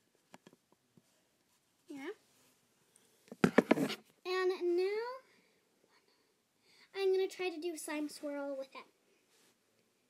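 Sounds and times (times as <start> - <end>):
handling knocks and rubbing: 3.3 - 4.0.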